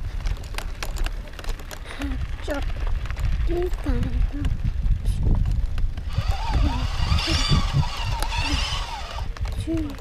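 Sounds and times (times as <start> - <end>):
wind buffeting microphone: 0.0 - 10.0
high-pitched wordless voice: 1.9 - 2.7, 3.4 - 4.6, 9.6 - 10.0.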